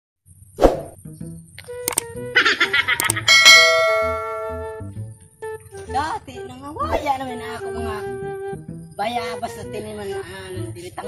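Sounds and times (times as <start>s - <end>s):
bell chime: 3.3s - 4.8s.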